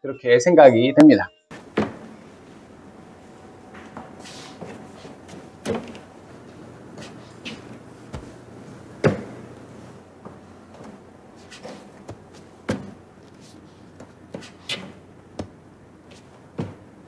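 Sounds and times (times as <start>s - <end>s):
footsteps on wooden stairs: 3.7s - 9.6s, 10.2s - 16.9s.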